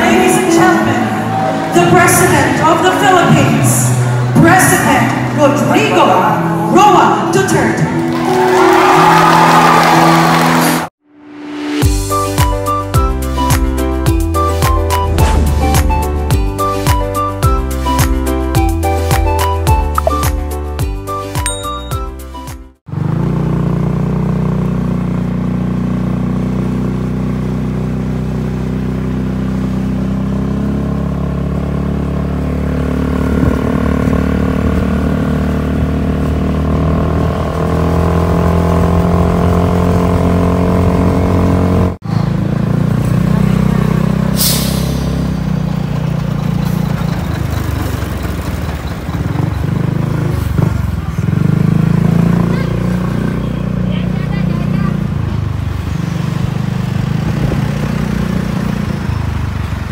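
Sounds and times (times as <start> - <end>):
vehicle engine drone: 0.0 - 12.4, 22.9 - 59.9
road noise: 0.0 - 59.9
brief high hiss: 44.4 - 45.2.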